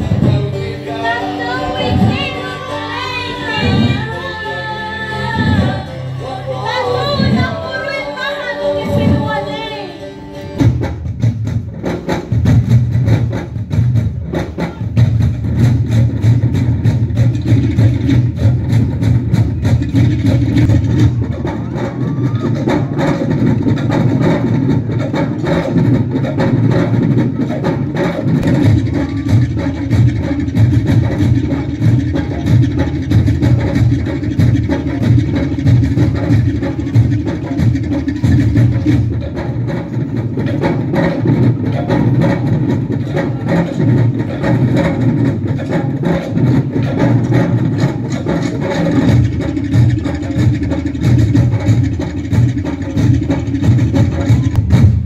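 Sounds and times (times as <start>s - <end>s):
slit drums and skin drums beating: 10.4s - 55.0s.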